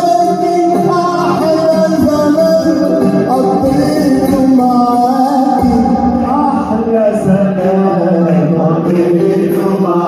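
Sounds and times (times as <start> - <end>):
man singing through microphone: 0.0 - 10.0.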